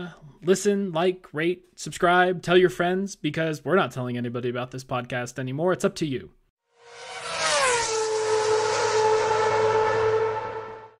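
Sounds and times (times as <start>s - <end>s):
racing car engine: 6.7s - 11.0s.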